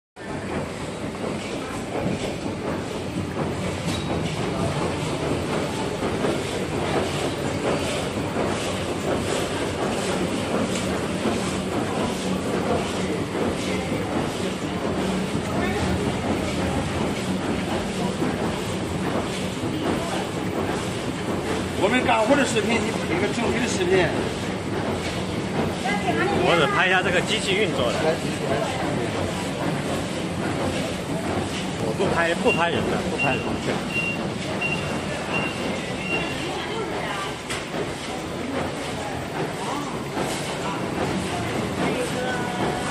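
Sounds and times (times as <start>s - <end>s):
machine running: 0.2s - 42.9s.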